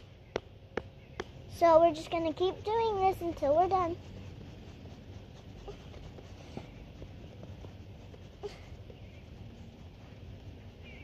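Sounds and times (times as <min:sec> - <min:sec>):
hands tapping and scraping ground: 0:00.0 - 0:04.5, 0:05.6 - 0:09.2.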